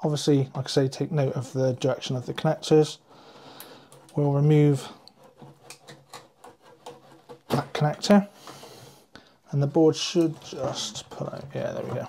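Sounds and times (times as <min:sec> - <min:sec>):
light scraping: 0:03.9 - 0:09.0, 0:09.6 - 0:12.0.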